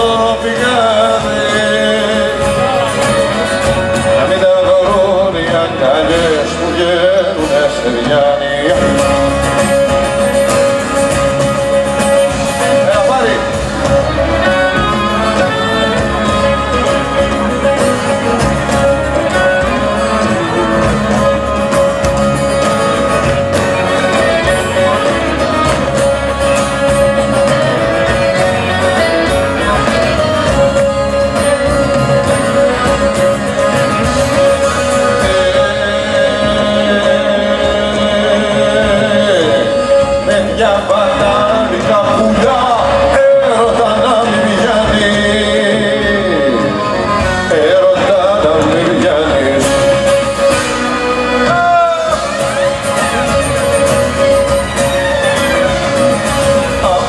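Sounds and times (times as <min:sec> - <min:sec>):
acoustic guitar: 0:00.0 - 0:57.0
band accompaniment: 0:00.0 - 0:57.0
man singing: 0:00.0 - 0:57.0.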